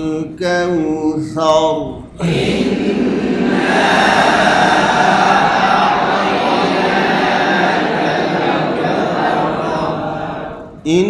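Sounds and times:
many voices reciting together: 0:00.0 - 0:11.0.

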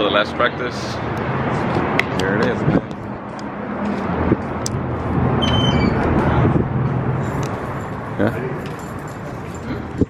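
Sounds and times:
traffic noise with low hum: 0:00.0 - 0:10.0
high chirps: 0:05.4 - 0:06.0.

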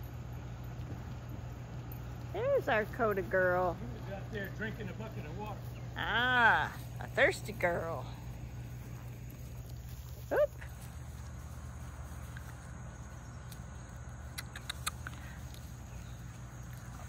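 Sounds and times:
low background hum: 0:00.0 - 0:17.0
faint ticks: 0:13.4 - 0:17.0.

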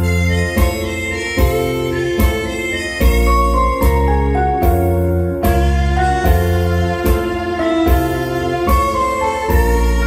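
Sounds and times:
slow rock instrumental: 0:00.0 - 0:10.0.

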